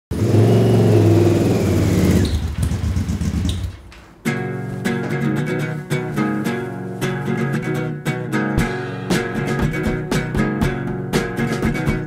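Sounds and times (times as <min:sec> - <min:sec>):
motorcycle engine running: 0:00.1 - 0:03.8.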